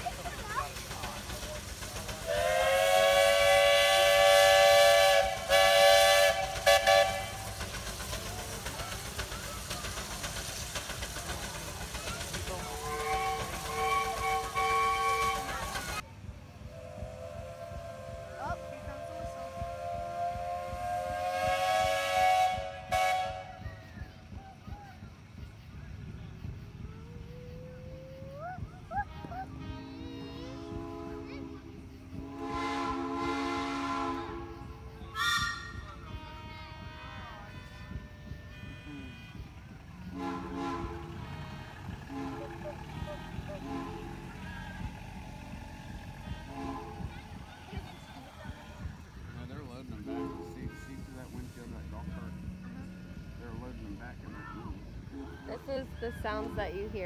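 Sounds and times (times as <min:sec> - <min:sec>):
steam whistle blasts: 0:02.2 - 0:07.6, 0:12.8 - 0:16.0, 0:16.7 - 0:23.8, 0:30.0 - 0:45.0, 0:46.2 - 0:47.1, 0:50.0 - 0:51.7.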